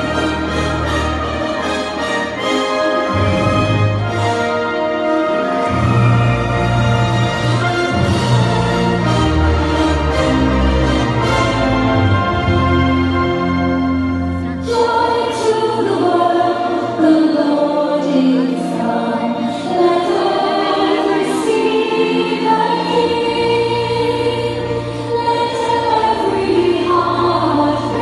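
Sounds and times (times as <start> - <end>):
choir singing with instruments: 0.0 - 28.0.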